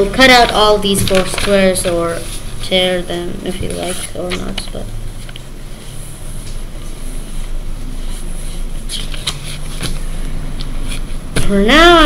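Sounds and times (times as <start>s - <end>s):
low background rumble and hum: 0.0s - 12.0s.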